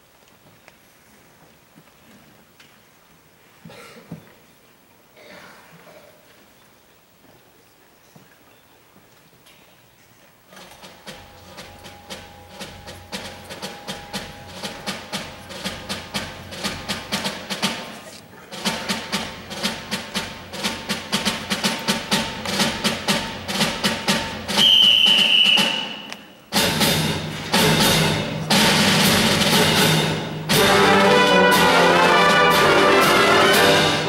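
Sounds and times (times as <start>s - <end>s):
percussion playing steady beat: 10.6s - 34.0s
wind ensemble playing loudly: 24.5s - 34.0s
piercing whistle-like tone: 24.6s - 26.4s.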